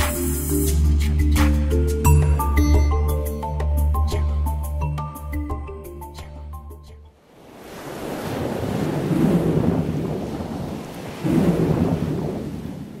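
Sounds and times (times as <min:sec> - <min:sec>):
ocean surf breaking: 0:07.2 - 0:13.0.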